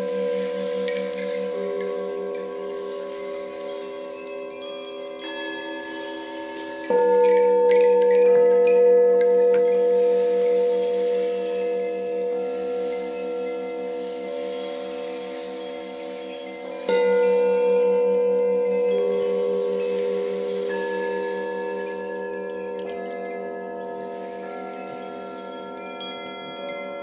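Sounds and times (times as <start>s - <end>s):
singing bowl struck loudly: 0.0s - 26.6s
light chime-like tinkles: 0.0s - 27.0s
singing bowls ringing: 0.0s - 27.0s.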